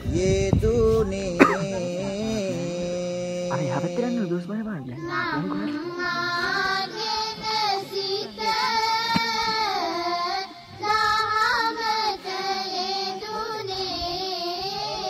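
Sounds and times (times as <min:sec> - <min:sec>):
high voice singing slow melody: 0:00.0 - 0:15.0.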